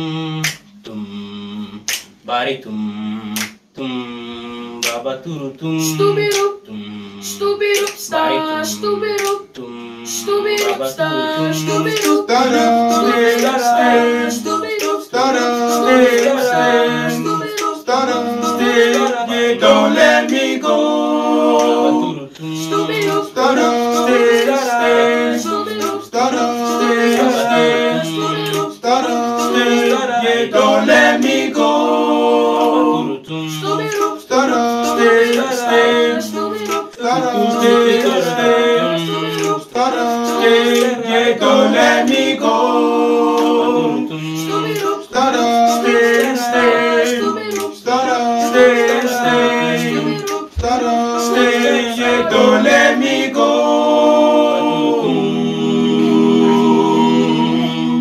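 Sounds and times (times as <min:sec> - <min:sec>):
boys singing a cappella: 0:00.0 - 0:58.0.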